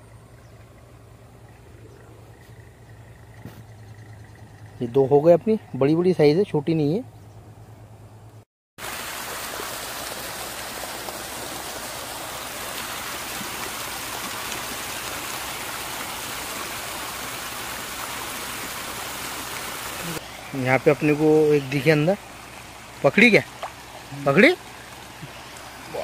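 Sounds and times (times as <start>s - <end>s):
water rushing over stone: 8.8s - 26.0s.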